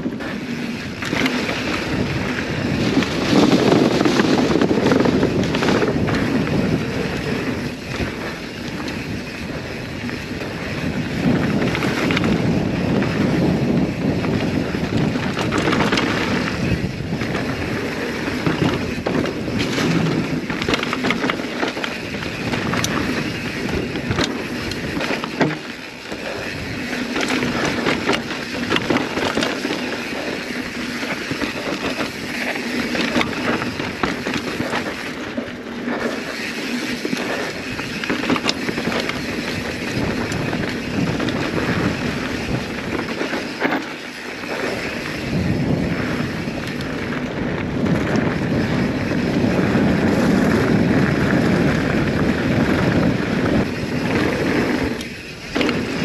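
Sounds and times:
bike clicking and rattling: 0:00.0 - 0:56.0
tyres on dirt and gravel: 0:00.0 - 0:56.0
wind rushing on microphone: 0:00.0 - 0:56.0.

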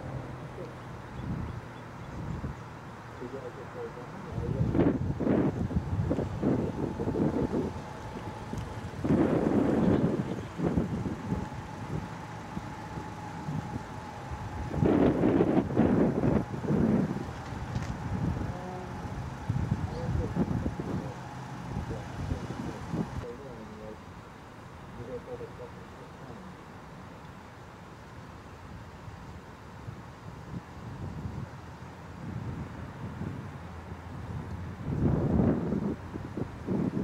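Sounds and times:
indistinct voices outdoors: 0:00.0 - 0:28.6
thin steady hum: 0:00.0 - 0:37.0.

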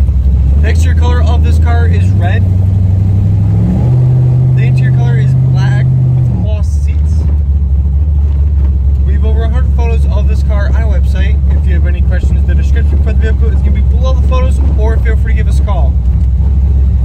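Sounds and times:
car engine pulling steadily: 0:00.0 - 0:17.0.

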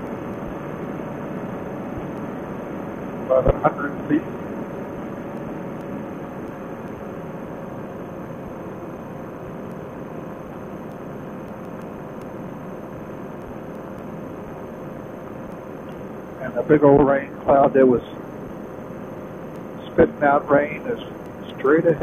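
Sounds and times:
paramotor engine and propeller: 0:00.0 - 0:22.0.

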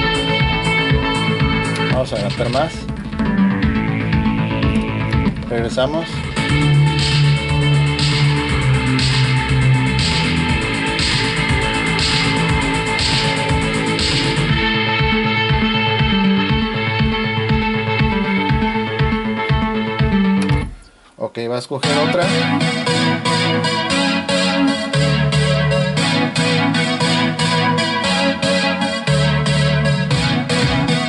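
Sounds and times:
music with steady bass line: 0:00.0 - 0:21.0, 0:21.8 - 0:31.0
choppy music fragments from cd player: 0:00.0 - 0:31.0.

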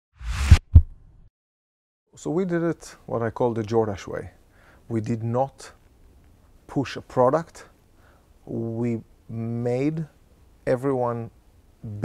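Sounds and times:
whoosh: 0:00.2 - 0:01.1.

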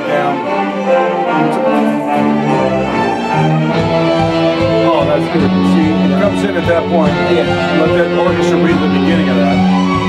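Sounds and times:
bowed strings chords: 0:00.0 - 0:10.0
low pulsing notes: 0:00.0 - 0:10.0.

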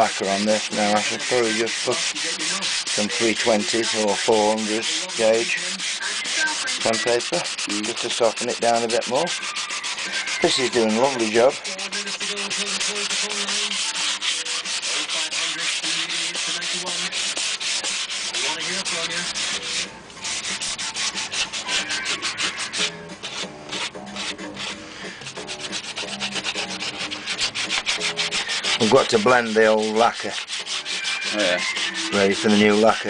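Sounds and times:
sandpaper rubbing on wood: 0:00.0 - 0:33.0.

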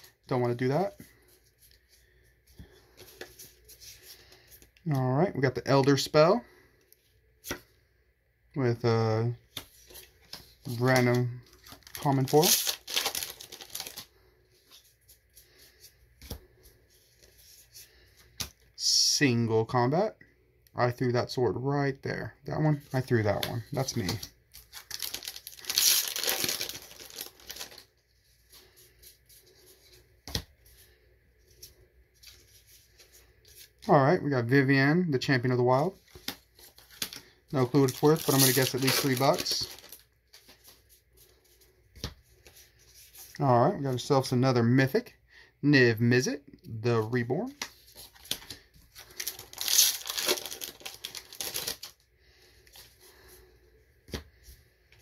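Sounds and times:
foil wrapper tearing and crinkling: 0:11.6 - 0:14.1, 0:24.6 - 0:27.9, 0:36.3 - 0:40.0, 0:49.0 - 0:52.0
cards being handled: 0:22.9 - 0:27.8.

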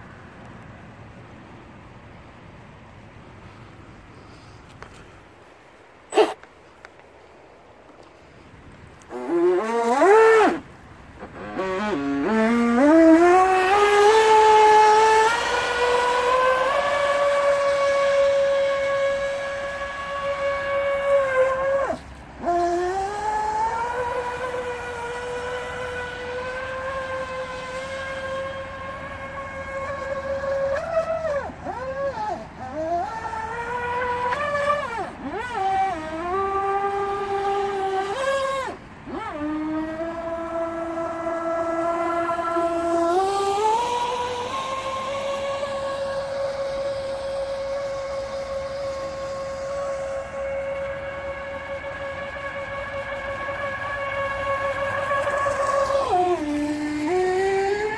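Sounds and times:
model jet boat motor whine: 0:07.9 - 0:57.9.

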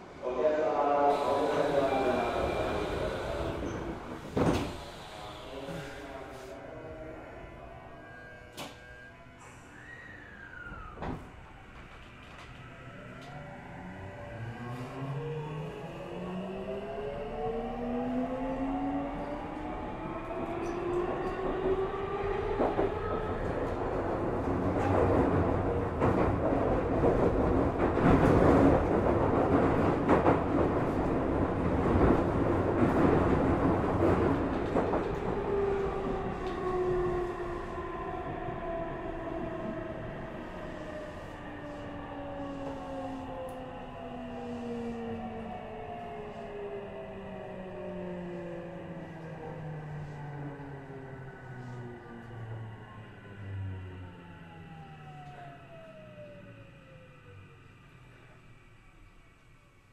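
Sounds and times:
train motor whine: 0:01.1 - 0:06.3.

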